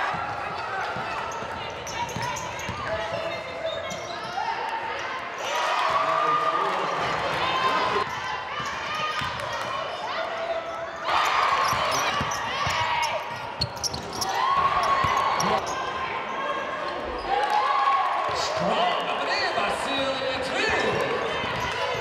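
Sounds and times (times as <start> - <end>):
sneakers squeaking: 0.2 - 4.6, 7.8 - 17.4, 20.7 - 22.0
people shouting in gym: 4.1 - 13.3.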